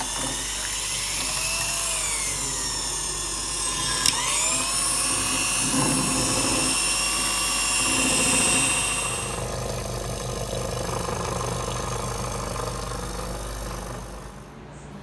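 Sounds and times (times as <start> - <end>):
stand mixer motor whining: 0.0 - 14.4.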